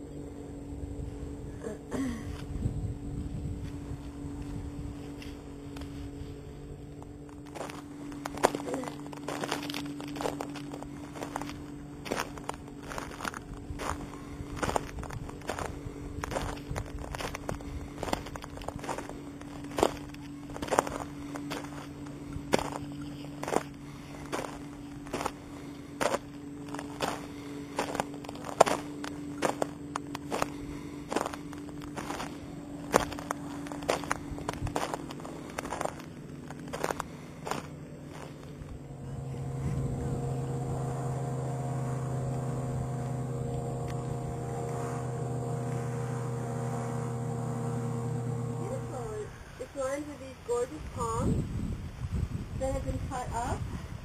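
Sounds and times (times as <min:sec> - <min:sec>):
steady low hum: 0:00.0 - 0:54.0
footsteps crunching on gravel: 0:07.0 - 0:49.3.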